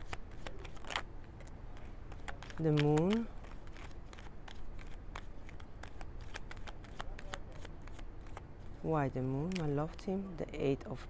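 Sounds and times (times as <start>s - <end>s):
cards being shuffled: 0.0s - 9.8s.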